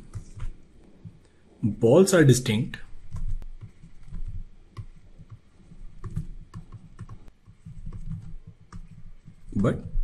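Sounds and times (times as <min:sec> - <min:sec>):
stylus tapping and scratching: 0:00.0 - 0:01.3, 0:02.9 - 0:10.0.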